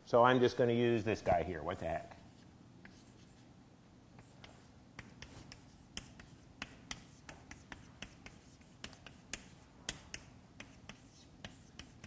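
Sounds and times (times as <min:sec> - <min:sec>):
chalk writing on blackboard: 0:02.1 - 0:03.5, 0:04.2 - 0:12.0.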